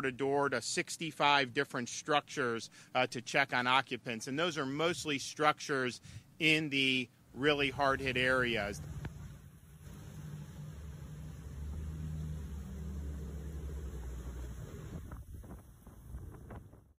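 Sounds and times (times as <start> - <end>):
vehicle engine humming: 7.6 - 16.8
floodwater washing: 7.7 - 16.2.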